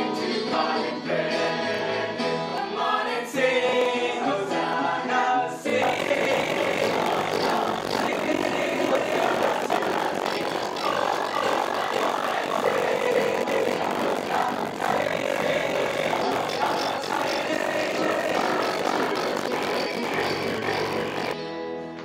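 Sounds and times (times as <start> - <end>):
children singing and chanting: 5.7 - 20.7
electronic keyboard: 5.7 - 22.0.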